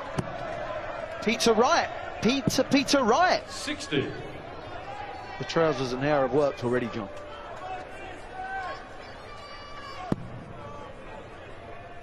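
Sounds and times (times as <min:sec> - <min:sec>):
arena crowd murmuring: 0:00.0 - 0:12.0
crowd calls and whistles: 0:00.0 - 0:12.0.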